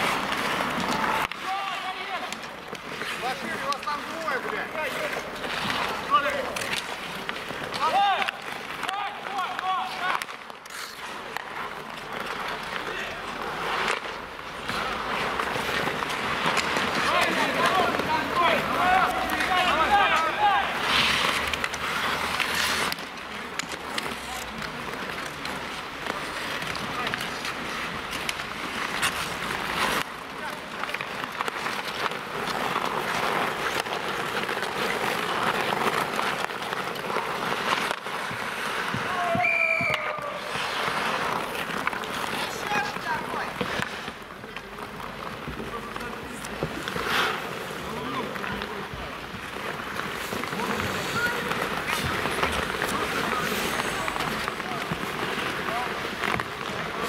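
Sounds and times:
skates scraping on ice: 0:00.0 - 0:57.0
sticks and puck clacking: 0:00.0 - 0:57.0
players shouting: 0:16.9 - 0:21.2.

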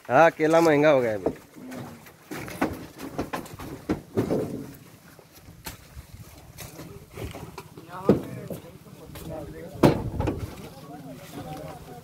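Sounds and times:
knocks and thumps of bananas stacked: 0:02.3 - 0:04.8, 0:09.8 - 0:10.5.

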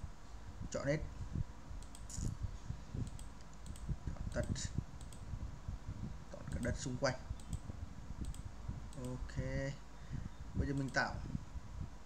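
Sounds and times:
computer mouse clicking: 0:01.8 - 0:02.3, 0:03.0 - 0:05.2, 0:07.4 - 0:09.2.

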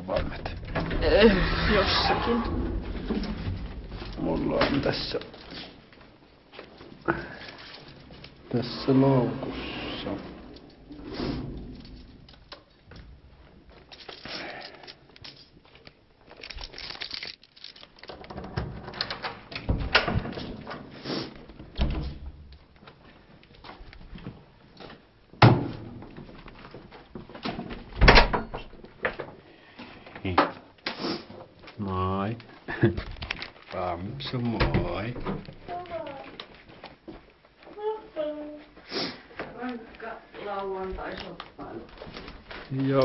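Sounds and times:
bags rustling: 0:13.4 - 0:18.1
door knocks and clicks: 0:28.0 - 0:28.7.

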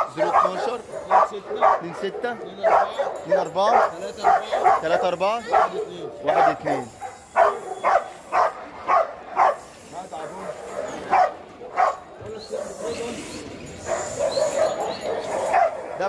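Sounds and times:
dog barking: 0:00.0 - 0:09.7, 0:10.4 - 0:13.0, 0:13.8 - 0:16.0.

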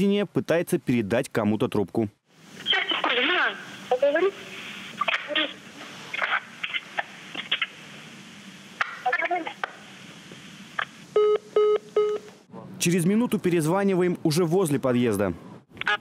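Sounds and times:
woman talking over phone speaker: 0:02.6 - 0:05.6, 0:09.0 - 0:09.7
muffled noise over phone line: 0:02.6 - 0:12.4.

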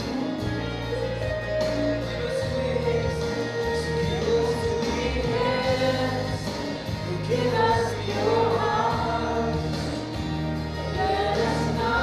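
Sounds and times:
women singing worship song: 0:01.8 - 0:12.0.

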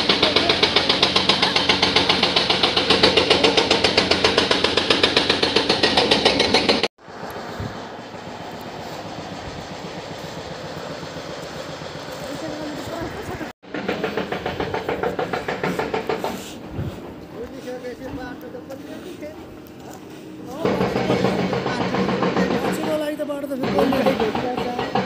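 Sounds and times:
hydraulic breaker pounding rock: 0:00.0 - 0:06.9, 0:09.4 - 0:17.2, 0:20.5 - 0:25.0
machine engine: 0:00.0 - 0:25.0.

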